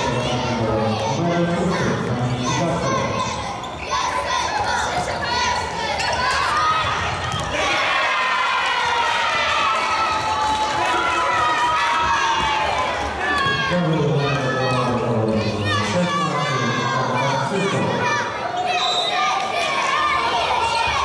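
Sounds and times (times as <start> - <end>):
children shouting: 0.1 - 21.0.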